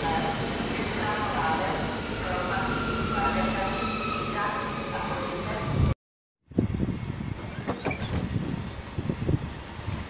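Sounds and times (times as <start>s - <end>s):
freight train rumbling: 6.5s - 10.0s.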